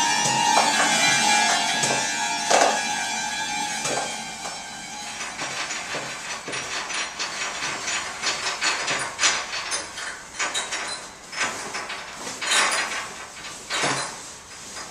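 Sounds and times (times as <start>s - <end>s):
sharp struck accents: 0.0s - 6.3s
held note: 0.0s - 6.8s
hand percussion clicks and scrapes: 0.0s - 14.9s.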